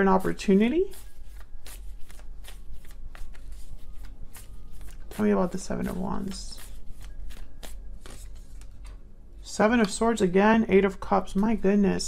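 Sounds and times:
cards being shuffled: 0:00.2 - 0:09.0.

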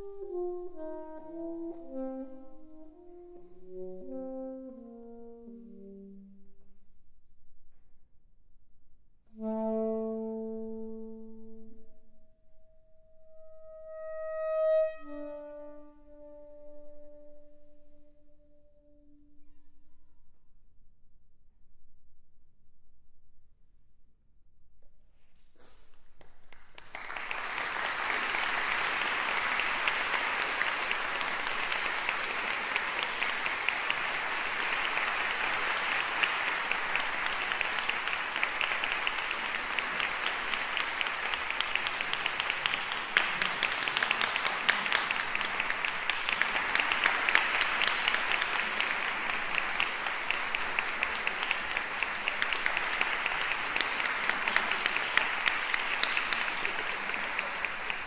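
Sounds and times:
audience applauding: 0:26.2 - 0:58.0.

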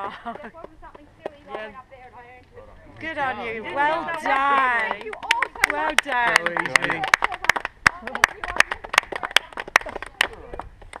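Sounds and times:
people clapping: 0:00.0 - 0:01.8, 0:03.6 - 0:11.0
people talking and laughing: 0:00.0 - 0:11.0.

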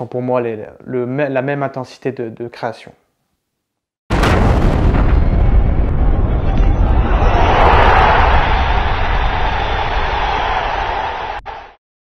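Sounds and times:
boom with heavy rumble: 0:04.1 - 0:10.4.

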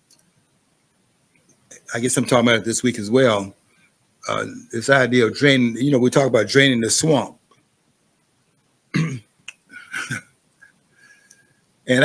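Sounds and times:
click: 0:00.1 - 0:00.3
soft throaty sound: 0:08.5 - 0:11.6
man clearing his throat: 0:08.9 - 0:10.3.

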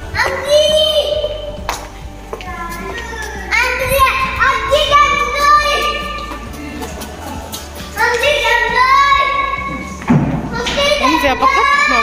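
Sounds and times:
music with high singing voice: 0:00.0 - 0:10.7
thump: 0:10.0 - 0:10.8.

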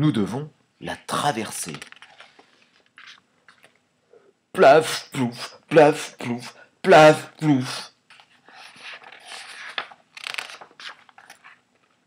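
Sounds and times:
book pages rustling: 0:01.6 - 0:03.8, 0:08.1 - 0:12.0.

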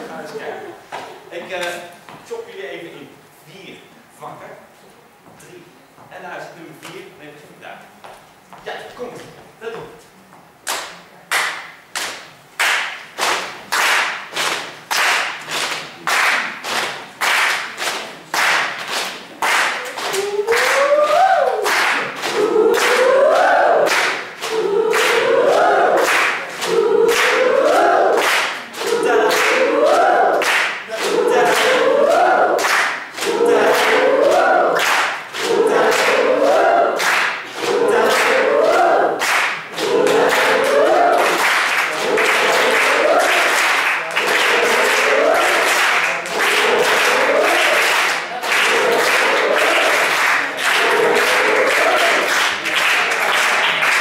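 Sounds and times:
audience clapping a beat: 0:10.6 - 0:54.0
crowd singing in chorus: 0:20.4 - 0:54.0.

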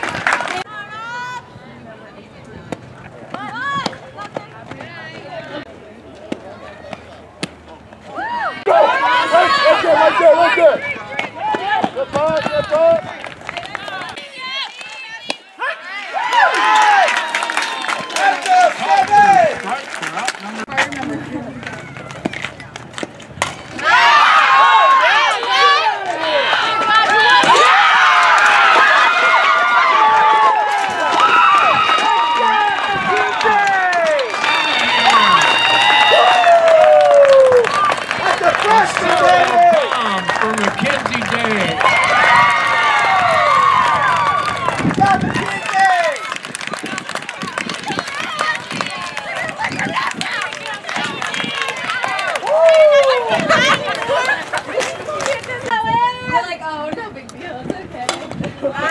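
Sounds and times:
excited chatter: 0:08.1 - 0:22.8, 0:23.7 - 0:58.9
loud yell: 0:23.8 - 0:40.6
crowd cheering and screaming: 0:23.8 - 0:46.3, 0:51.0 - 0:55.2.

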